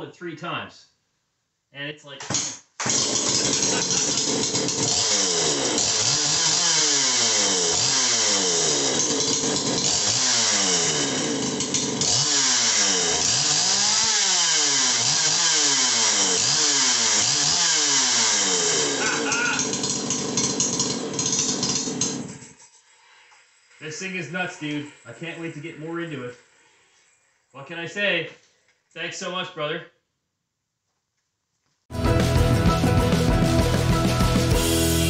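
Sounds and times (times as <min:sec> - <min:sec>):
chainsaw revving: 0:02.8 - 0:22.6.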